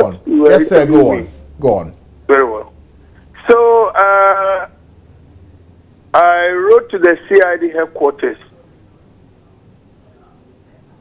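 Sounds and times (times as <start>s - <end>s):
man's voice over telephone: 0.0s - 2.7s, 3.4s - 4.8s, 6.2s - 8.5s.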